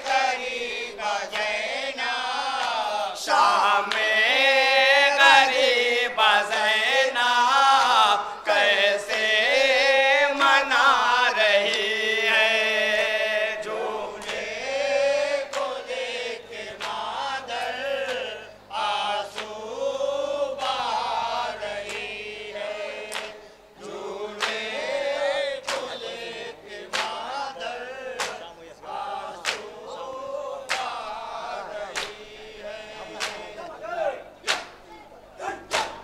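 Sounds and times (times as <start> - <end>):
men chanting a lament: 0.0 - 36.0.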